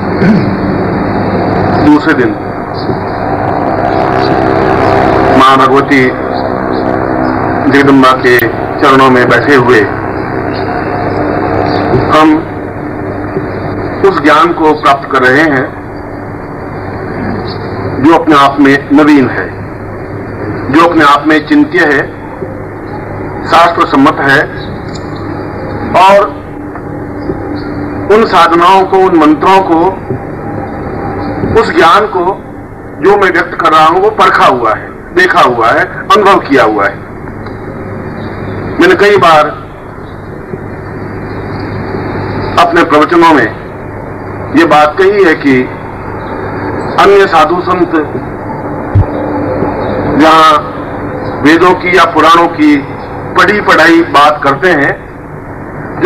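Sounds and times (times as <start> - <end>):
background hiss with low hum: 0.0 - 56.0
drone of held tones: 0.0 - 56.0
man speaking: 1.8 - 2.4, 5.3 - 6.3, 7.6 - 10.0, 12.0 - 12.5, 14.0 - 15.8, 23.4 - 24.6, 25.9 - 26.4, 28.1 - 30.2, 31.5 - 32.4, 33.0 - 37.0, 38.8 - 39.7, 42.6 - 43.6, 44.6 - 45.8, 47.0 - 48.2, 50.2 - 50.8, 51.4 - 55.0.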